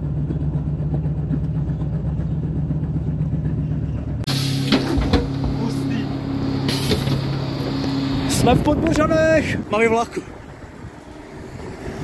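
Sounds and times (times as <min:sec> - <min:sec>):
diesel railcar engine idling: 0:00.0 - 0:11.6.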